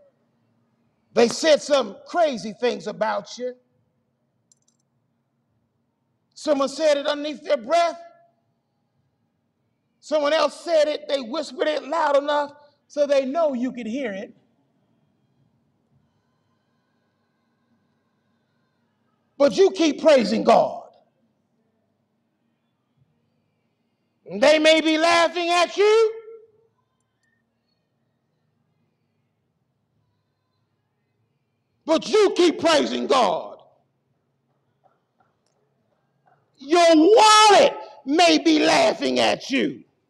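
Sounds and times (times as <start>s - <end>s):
faint low room hum: 0.0s - 40.0s
man preaching: 1.1s - 3.7s, 6.3s - 8.3s, 10.0s - 14.4s, 19.4s - 21.1s, 24.3s - 26.5s, 31.8s - 33.8s, 36.6s - 39.9s
person speaking: 31.9s - 33.7s, 36.6s - 39.9s.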